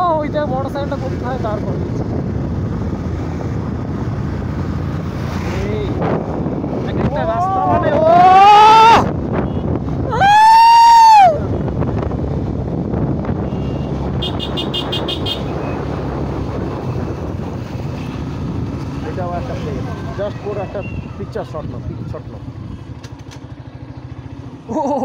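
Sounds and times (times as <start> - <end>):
wind and riding noise: 0.0 - 25.0
person whooping: 7.3 - 9.1, 10.0 - 11.5.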